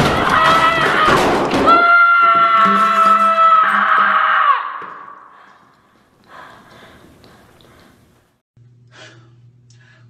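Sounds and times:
person breathing in: 5.3 - 8.1
steady low hum: 5.3 - 10.0.

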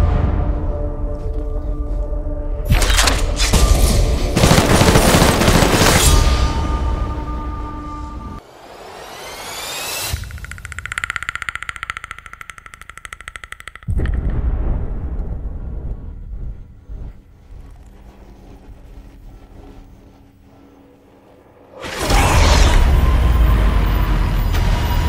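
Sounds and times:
low drone: 5.2 - 25.0
fast pulsing tone: 9.4 - 14.3.

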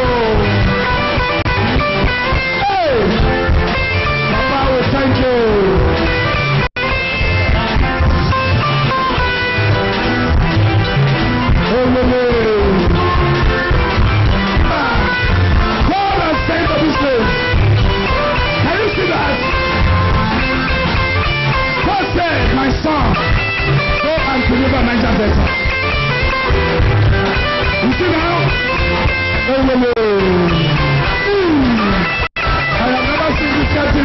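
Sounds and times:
loud guitar music with beat: 0.0 - 34.0.

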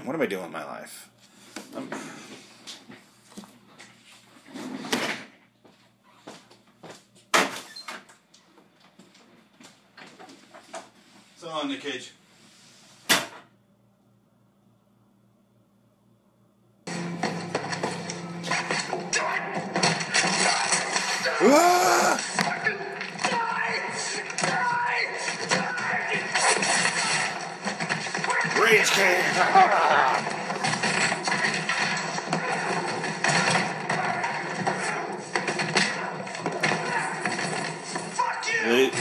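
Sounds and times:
man's voice: 28.5 - 30.2.

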